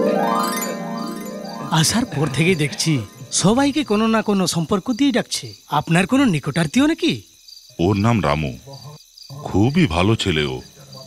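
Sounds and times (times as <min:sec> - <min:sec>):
crickets chirping: 0:00.0 - 0:11.0
man speaking: 0:01.6 - 0:07.2, 0:07.8 - 0:11.0.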